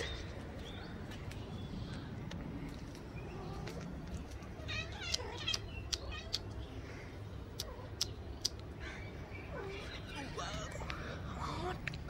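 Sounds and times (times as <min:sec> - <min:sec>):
sharp clicks: 0:05.0 - 0:06.6.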